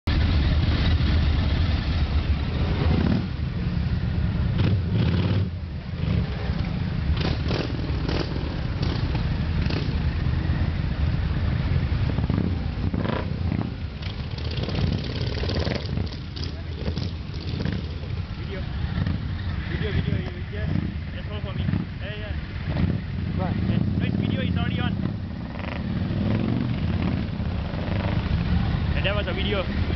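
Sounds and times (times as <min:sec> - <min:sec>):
motorcycle engines idling: 0:00.1 - 0:29.9.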